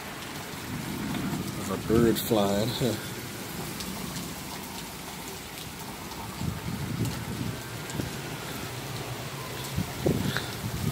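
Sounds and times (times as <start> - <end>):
heavy rain on a street: 0.0 - 10.9.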